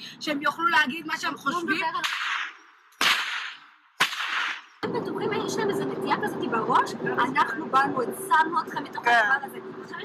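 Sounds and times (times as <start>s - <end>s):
sharp cracks: 2.0s - 4.8s.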